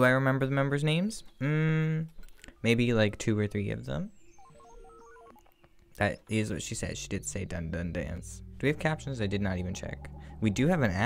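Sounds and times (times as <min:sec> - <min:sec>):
telephone keypad dialing beeps: 0:02.4 - 0:07.7
steady low dial tone: 0:02.5 - 0:10.9.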